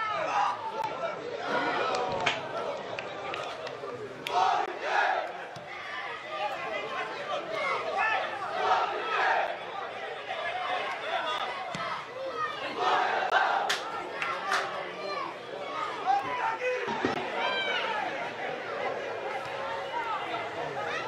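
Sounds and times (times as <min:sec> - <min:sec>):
sparse crowd of spectators: 0:00.0 - 0:21.0
men shouting on pitch: 0:04.2 - 0:21.0.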